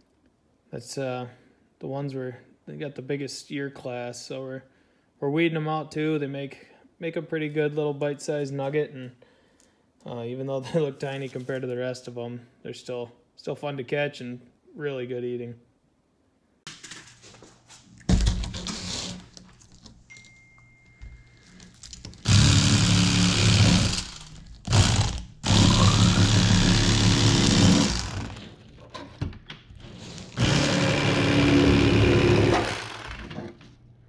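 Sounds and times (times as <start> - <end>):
electric fillet knife buzzing: 22.2 - 28.4, 30.3 - 33.3.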